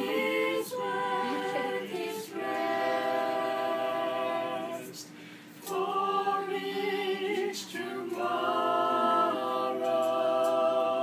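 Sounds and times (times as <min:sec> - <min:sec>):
group singing a cappella: 0:00.0 - 0:11.0.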